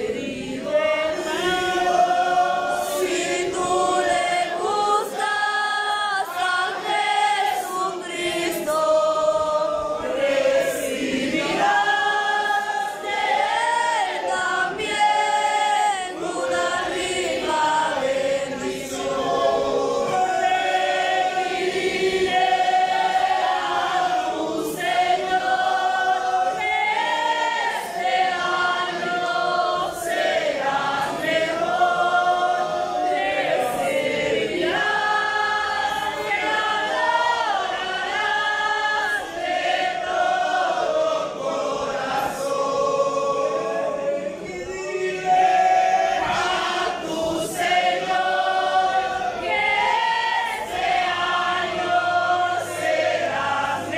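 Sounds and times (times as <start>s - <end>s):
congregation singing a hymn: 0.0s - 53.9s.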